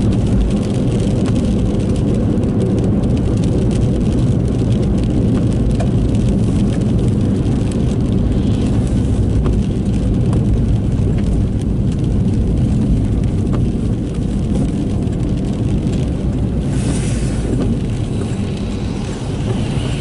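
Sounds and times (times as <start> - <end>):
car engine and tyres rumbling: 0.0 - 20.0.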